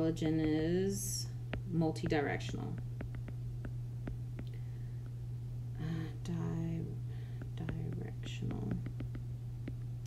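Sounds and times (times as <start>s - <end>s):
woman speaking softly: 0.0s - 2.8s, 5.8s - 7.0s, 7.6s - 8.9s
steady low hum: 0.0s - 10.0s.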